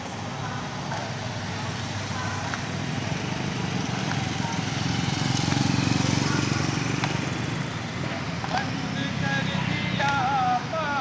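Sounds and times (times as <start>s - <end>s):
street traffic: 0.0s - 11.0s
motorcycle engine passing: 2.7s - 11.0s.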